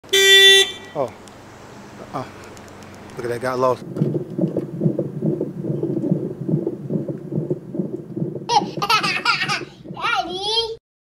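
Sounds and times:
car horn honk: 0.0 - 1.2.

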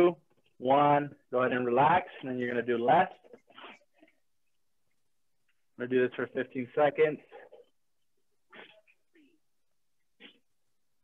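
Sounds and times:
person speaking: 0.0 - 3.5.

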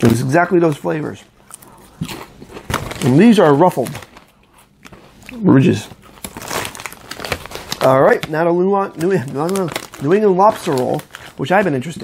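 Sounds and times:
plastic chip bag crinkling: 0.0 - 12.0.

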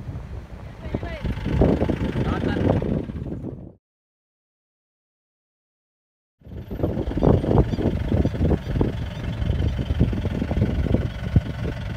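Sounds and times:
vehicle engine rumbling: 0.0 - 3.8, 6.4 - 11.9.

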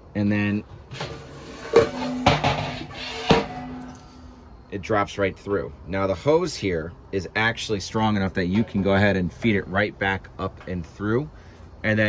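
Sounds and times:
metal knocking inside hollow post: 1.7 - 4.0.

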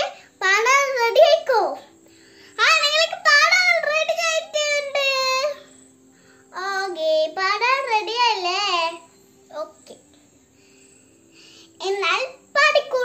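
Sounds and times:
girl singing: 0.0 - 1.9, 2.5 - 5.7, 6.5 - 10.0, 11.8 - 13.0.

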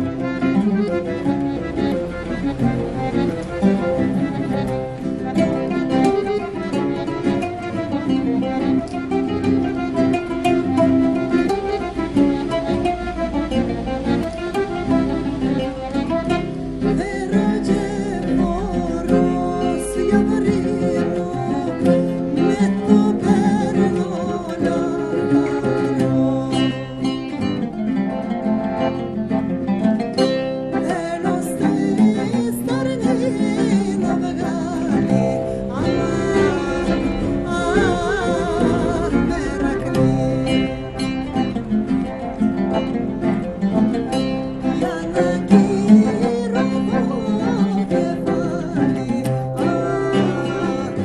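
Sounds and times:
accordion: 0.0 - 51.0
classical guitar: 0.0 - 51.0
oud: 0.0 - 51.0
woman singing: 16.4 - 27.6, 30.8 - 42.0, 44.5 - 51.0.

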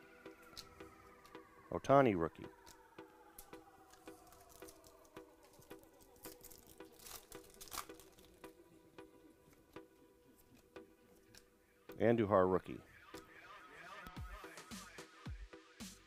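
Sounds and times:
background music with steady beat: 0.0 - 16.0
wrapper tearing and crinkling: 3.9 - 8.5.

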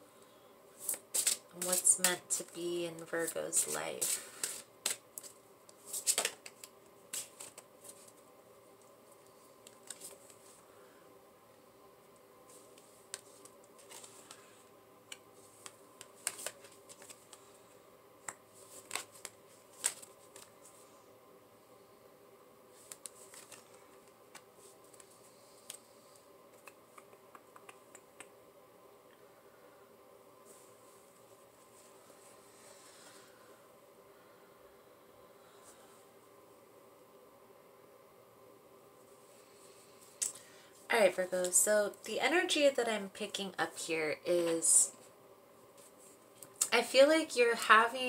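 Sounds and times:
low room hum: 0.0 - 48.0
cards snapping and sliding: 0.8 - 1.9, 4.0 - 5.3, 5.9 - 7.7, 15.6 - 17.4
cards clicking and snapping: 15.6 - 17.4.

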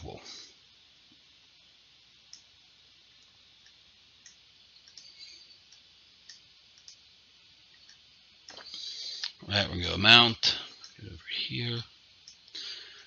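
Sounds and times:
room hiss: 0.0 - 13.0
computer mouse clicks: 3.2 - 7.0, 12.2 - 12.6.

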